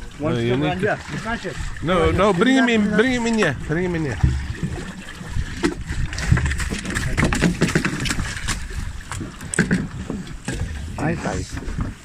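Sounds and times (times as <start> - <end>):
fish knocking and thudding on deck: 4.1 - 4.9, 5.5 - 10.8.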